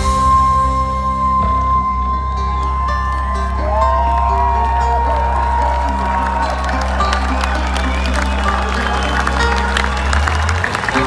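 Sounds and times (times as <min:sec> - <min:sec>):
metal band playing live: 0:00.0 - 0:08.9
crowd cheering and whooping: 0:01.4 - 0:11.0.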